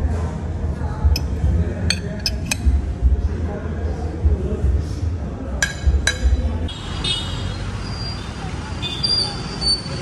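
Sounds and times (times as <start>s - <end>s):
low rumble of cars: 0.0s - 10.0s
tableware clink: 1.2s - 2.7s.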